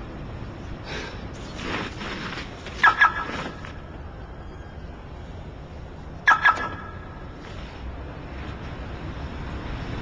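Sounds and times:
car alarm chirping: 2.8s - 3.4s, 6.2s - 7.2s.

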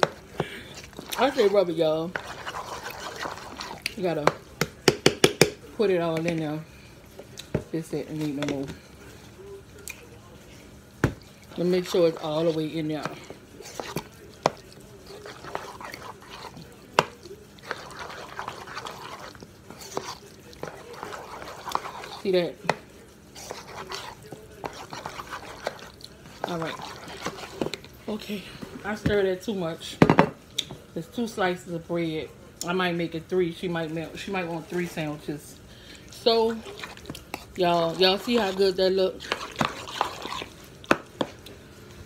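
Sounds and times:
fork mashing wet food: 0.0s - 6.4s, 11.0s - 29.2s, 34.1s - 41.6s
fork tapping bowl: 4.2s - 5.6s.

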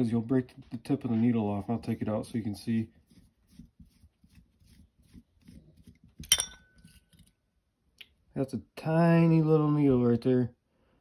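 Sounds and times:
sharp metallic clink: 6.2s - 6.8s
small metal parts scraping: 6.2s - 7.4s.

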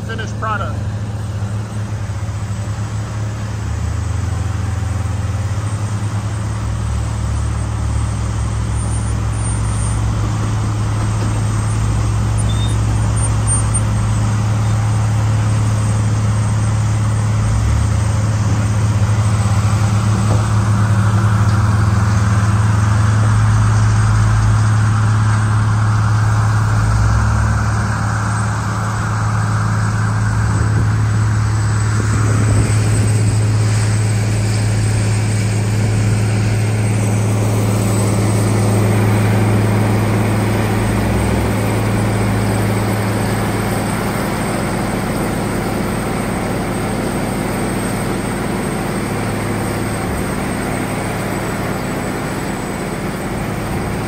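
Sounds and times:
deep drone of grinder engine: 0.0s - 54.0s
wheel loader working: 0.0s - 54.0s.

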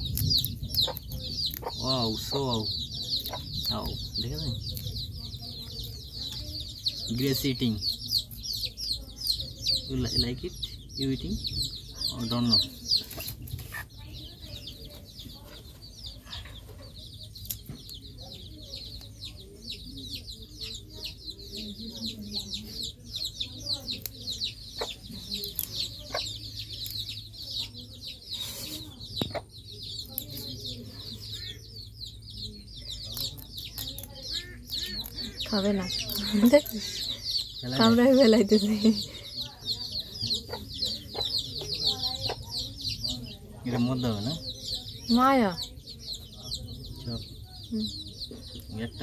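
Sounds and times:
birds chirping: 0.0s - 49.0s.

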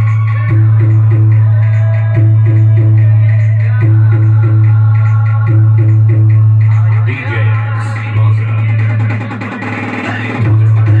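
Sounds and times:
heavy boosted bass line: 0.0s - 9.4s, 10.0s - 11.0s
loud music through speakers: 0.0s - 11.0s.

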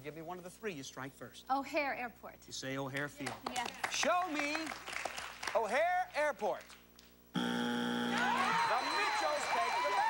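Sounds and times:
harsh buzzer: 7.3s - 9.4s
audience applause and cheering: 8.0s - 10.0s.

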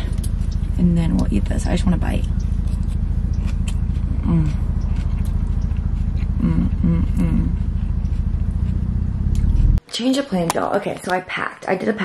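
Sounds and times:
car engine idling: 0.0s - 9.8s
person humming while eating: 4.0s - 5.0s, 6.2s - 7.8s.

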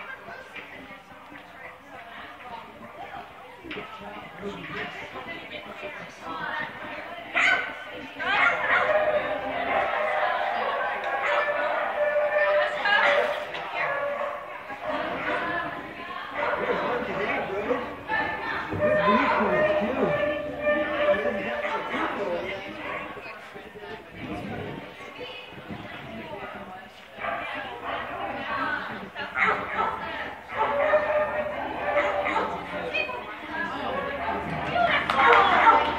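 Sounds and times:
indistinct chatter: 0.0s - 35.9s.

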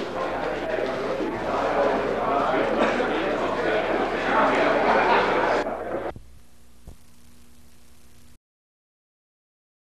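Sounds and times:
low electrical hum: 3.8s - 8.4s.

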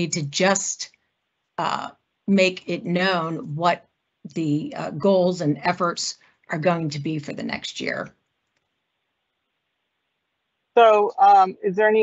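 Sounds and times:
faint small clicks: 8.4s - 8.8s
person speaking: 10.8s - 12.0s.

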